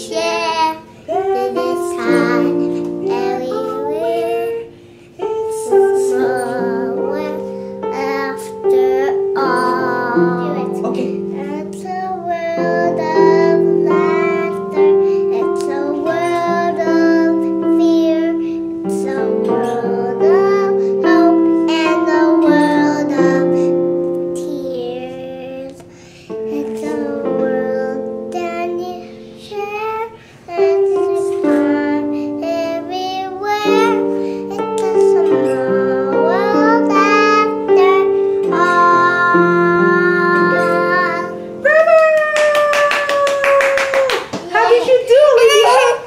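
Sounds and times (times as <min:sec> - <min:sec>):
child singing: 0:00.0 - 0:41.6
piano accompaniment: 0:00.0 - 0:46.0
hand-clapping: 0:42.2 - 0:44.6.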